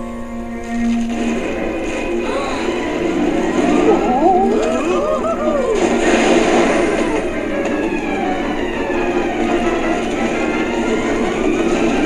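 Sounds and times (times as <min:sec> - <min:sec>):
churning water rushing: 0:01.0 - 0:12.0.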